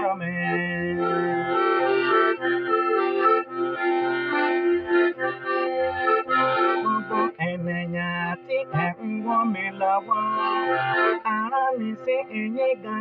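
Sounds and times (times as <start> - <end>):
piano accordion playing: 0.0 - 13.0.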